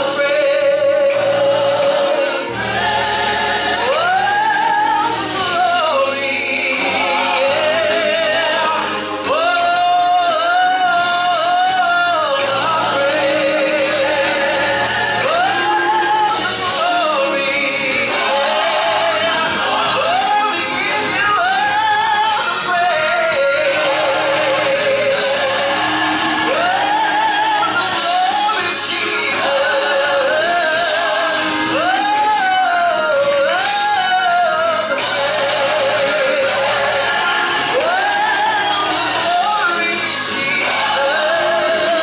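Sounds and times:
gospel choir singing: 0:00.0 - 0:42.0.

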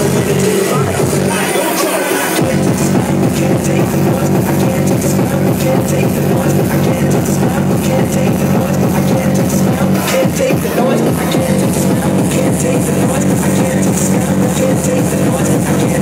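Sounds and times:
dense synths: 0:00.0 - 0:16.0
fast kick-drum beat: 0:00.0 - 0:16.0
hardcore techno music: 0:00.0 - 0:16.0.

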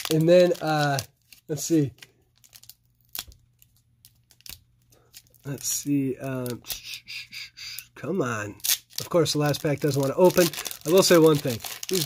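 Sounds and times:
card pack wrapper crinkling: 0:00.0 - 0:07.0, 0:08.5 - 0:12.0
sharp wrapper crackles: 0:00.0 - 0:07.8, 0:08.6 - 0:12.0.

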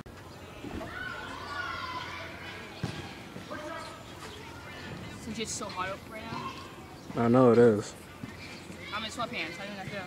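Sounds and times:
faint high-pitched distant voices: 0:00.2 - 0:10.0.

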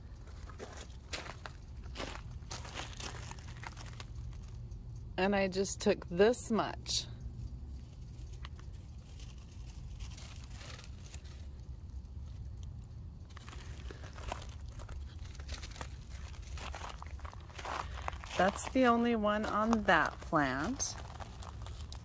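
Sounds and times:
low steady rumble: 0:00.0 - 0:22.0.

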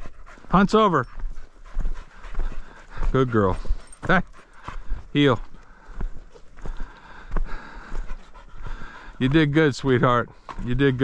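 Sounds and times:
dog panting hard: 0:00.0 - 0:11.0
footsteps on dirt track: 0:00.0 - 0:11.0.

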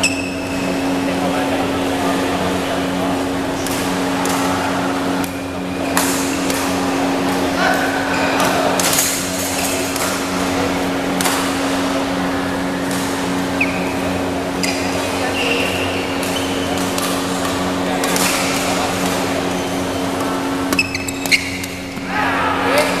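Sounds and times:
shoes squeaking on court: 0:00.0 - 0:01.0, 0:13.5 - 0:17.4, 0:19.4 - 0:22.0
steady hum: 0:00.0 - 0:23.0
background chatter: 0:00.6 - 0:20.8
rackets hitting shuttlecock: 0:03.6 - 0:10.5, 0:11.1 - 0:11.8, 0:15.4 - 0:23.0.

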